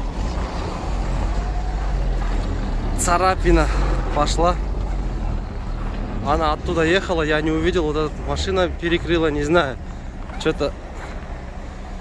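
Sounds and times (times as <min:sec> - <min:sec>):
car engines idling: 0:00.0 - 0:12.0.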